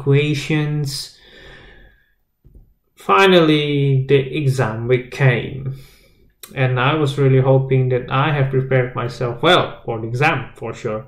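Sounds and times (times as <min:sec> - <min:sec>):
man breathing out softly: 0:01.2 - 0:02.2.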